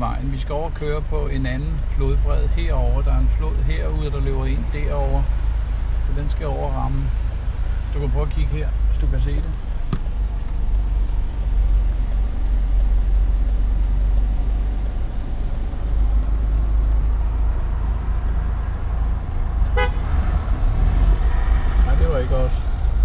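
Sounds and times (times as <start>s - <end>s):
engine and road rumble: 0.0s - 23.0s
car horn toot: 19.7s - 20.1s.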